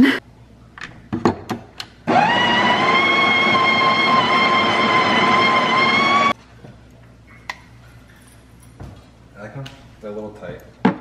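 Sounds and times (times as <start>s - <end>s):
coffee grinder motor whine: 2.1s - 6.4s.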